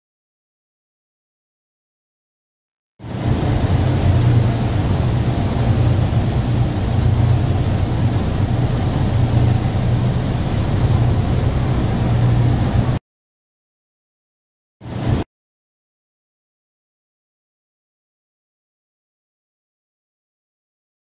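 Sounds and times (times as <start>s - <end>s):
churning wake water: 3.0s - 13.0s, 14.8s - 15.2s
wind: 3.0s - 13.0s
ferry engines droning: 3.2s - 13.0s.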